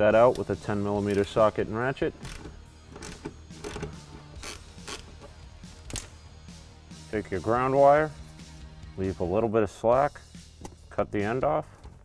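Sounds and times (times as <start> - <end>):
ratchet clicking: 2.2 - 5.2.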